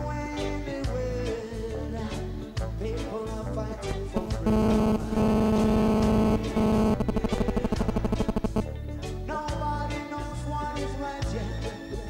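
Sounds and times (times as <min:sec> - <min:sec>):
reggae band with orchestra: 0:00.0 - 0:04.2, 0:08.8 - 0:12.0.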